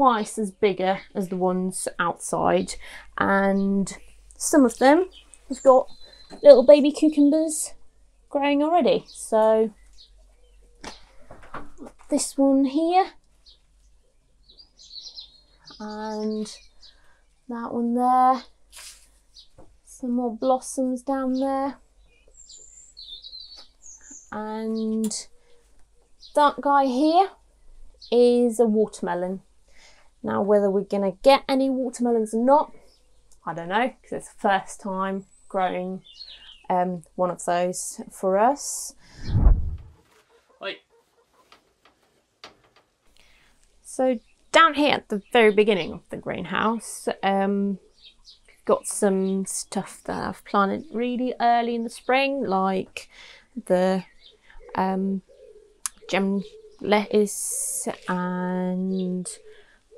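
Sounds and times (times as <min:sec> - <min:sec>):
small bird chirping: 0:02.5 - 0:12.2, 0:13.2 - 0:17.5, 0:18.4 - 0:19.6, 0:21.2 - 0:28.4, 0:35.2 - 0:36.7, 0:43.1 - 0:52.2, 0:54.0 - 0:59.9.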